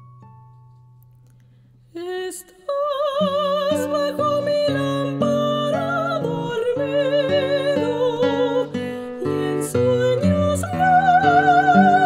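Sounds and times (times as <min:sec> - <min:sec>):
classical guitar plucking: 0:00.0 - 0:02.0, 0:02.9 - 0:12.0
soprano singing with vibrato: 0:01.9 - 0:12.0.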